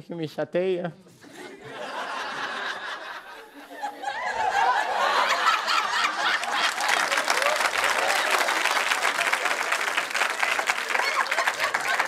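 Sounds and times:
laughter: 1.2s - 7.2s, 10.9s - 12.0s
audience clapping: 5.0s - 12.0s.

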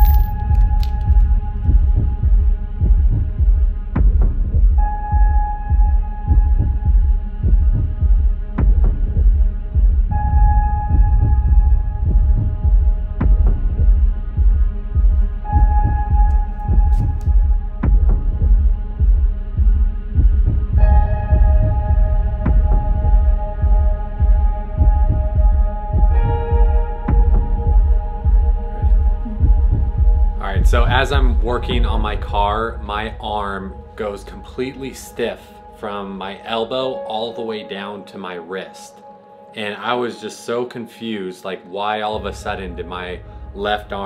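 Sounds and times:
heartbeat pulsing: 0.0s - 34.7s
sustained synth drone: 0.0s - 37.0s.

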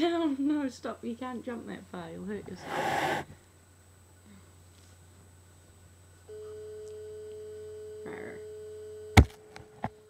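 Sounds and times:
steady hum: 0.8s - 6.4s.

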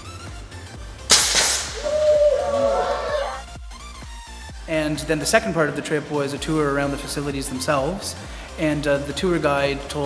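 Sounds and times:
gas cartridge loud hiss: 1.1s - 2.0s
children shouting: 1.8s - 3.4s.

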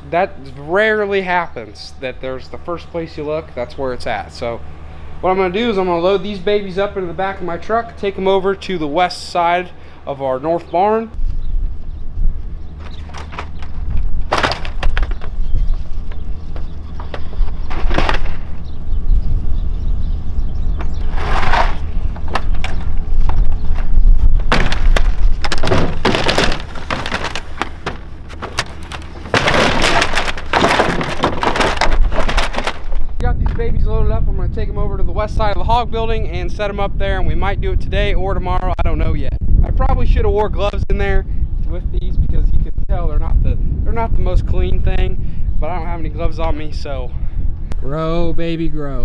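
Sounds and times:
wooden shutters knocking and clattering: 12.8s - 18.5s, 22.2s - 33.1s.

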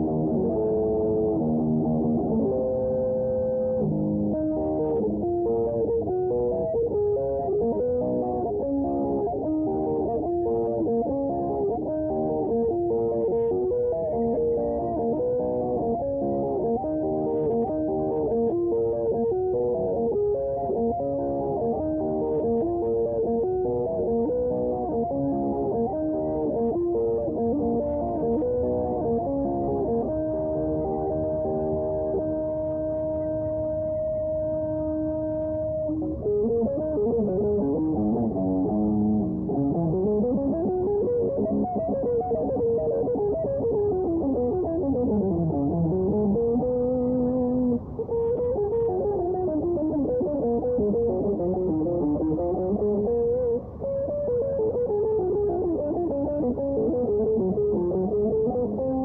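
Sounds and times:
electric guitar lead: 0.0s - 59.0s.

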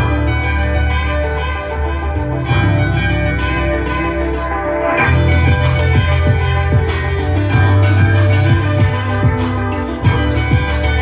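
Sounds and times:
looped electric guitar notes: 0.0s - 11.0s
low bass loop: 0.0s - 11.0s.

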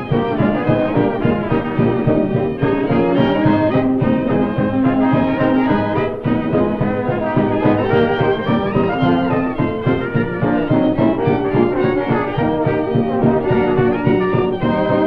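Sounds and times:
dance orchestra playing: 0.0s - 15.0s.

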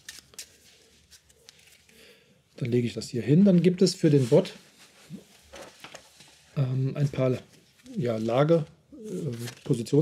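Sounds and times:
cards being handled: 0.0s - 2.0s.

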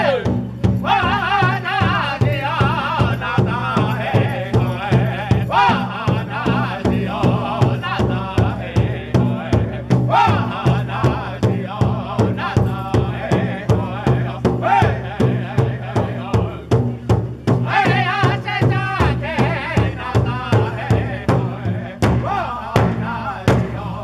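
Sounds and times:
large hand drum beat: 0.0s - 24.0s
men singing high wavering voices: 0.0s - 24.0s.

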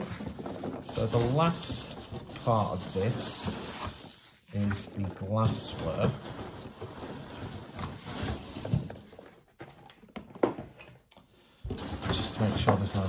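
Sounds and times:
rustling and scraping of cardboard: 0.0s - 10.7s, 11.6s - 13.0s.

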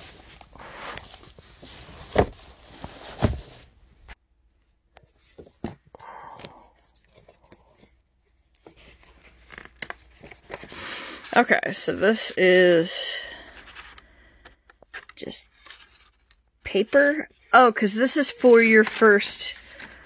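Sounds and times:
items shifted in cardboard box: 0.0s - 3.8s.

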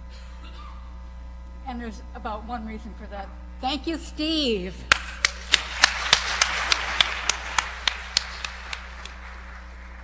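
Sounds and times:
one person clapping sharply: 4.9s - 9.4s
audience applauding: 4.9s - 10.0s.

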